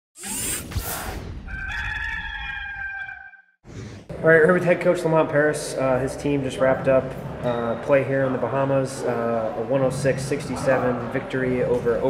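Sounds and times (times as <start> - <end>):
whoosh: 0.2 - 1.5
rooster crowing: 1.5 - 3.5.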